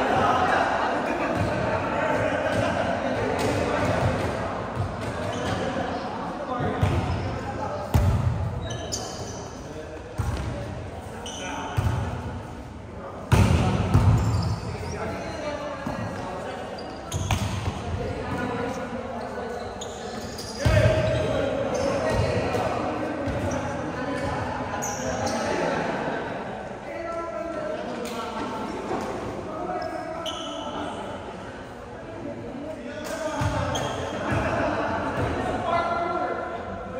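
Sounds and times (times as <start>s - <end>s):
volleyball smacks in gym: 13.3s - 14.2s.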